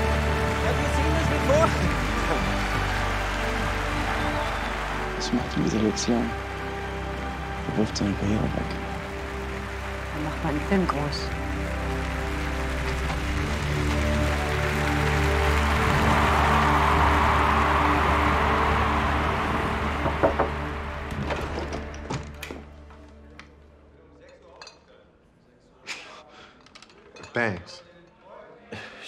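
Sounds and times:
film score sustained notes: 0:00.0 - 0:22.4
stadium crowd cheering: 0:00.0 - 0:22.4.

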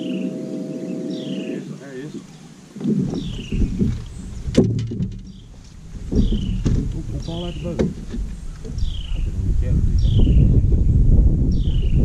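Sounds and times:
knocks and thuds on boat deck: 0:02.8 - 0:09.1.

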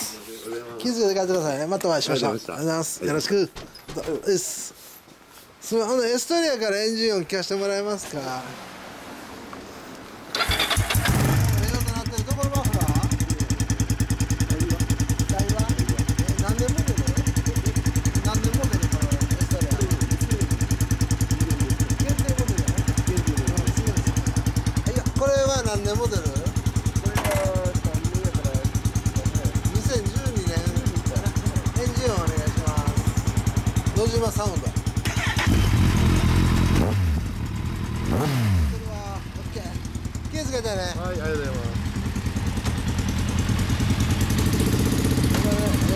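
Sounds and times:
motorcycle engine starting and idling: 0:10.3 - 0:45.9.

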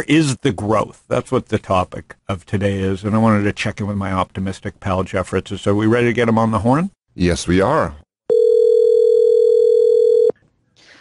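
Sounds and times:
telephone ringback tone: 0:08.3 - 0:10.4.

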